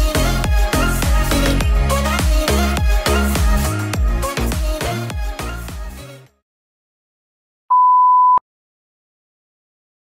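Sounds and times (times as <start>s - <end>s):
loud electronic beep: 7.7s - 8.4s.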